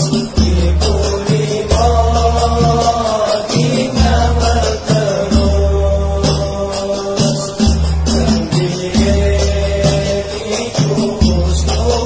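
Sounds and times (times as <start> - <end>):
music with deep bass notes: 0.0 - 12.0
person chanting verse: 0.0 - 12.0.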